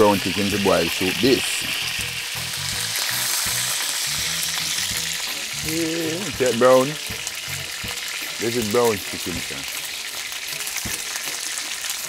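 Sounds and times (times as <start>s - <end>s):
chicken sizzling in hot oil: 0.0s - 12.0s.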